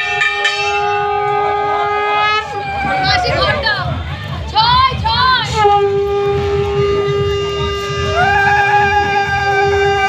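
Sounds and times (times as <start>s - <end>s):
conch shell blown: 0.0s - 2.7s, 5.5s - 10.0s.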